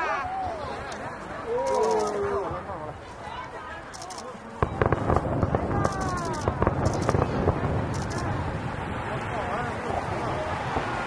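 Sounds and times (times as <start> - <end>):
firework cracks and crackles: 3.9 - 11.0
low rumbling firework boom: 4.6 - 11.0.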